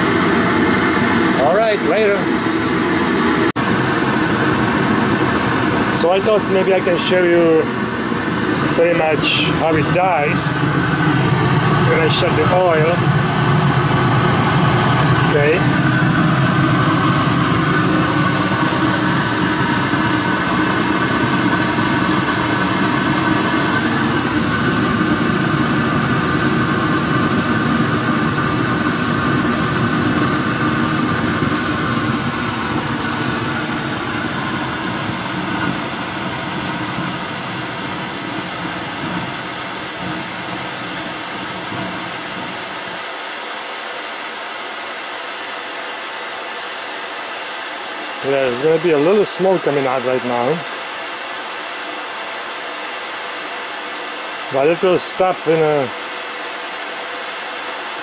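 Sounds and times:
burner flame rumble: 0:00.0 - 0:43.1, 0:48.1 - 0:50.7, 0:54.4 - 0:55.9
hair dryer whir: 0:00.0 - 0:58.0.

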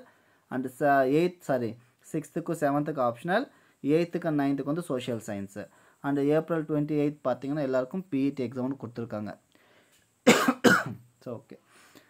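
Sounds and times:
person coughing: 0:10.3 - 0:11.0.

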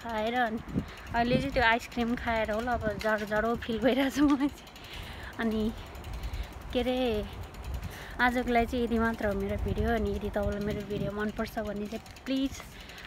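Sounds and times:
woman's voice: 0:00.0 - 0:04.6, 0:05.3 - 0:05.8, 0:06.7 - 0:07.4, 0:08.1 - 0:12.8.

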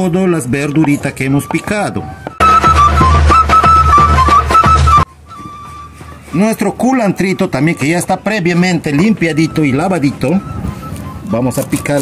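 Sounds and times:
high melody over low bass: 0:01.8 - 0:11.5.

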